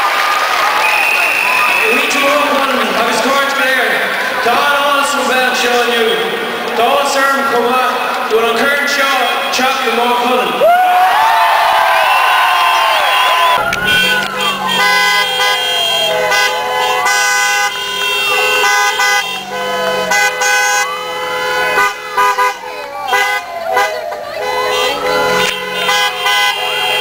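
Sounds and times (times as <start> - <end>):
crowd cheering: 0.0 - 27.0
siren wailing: 10.8 - 27.0
car horns held: 13.1 - 27.0.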